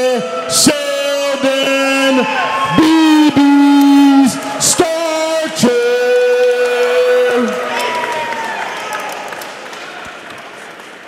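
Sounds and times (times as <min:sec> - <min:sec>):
announcer calling out: 0:00.0 - 0:07.5.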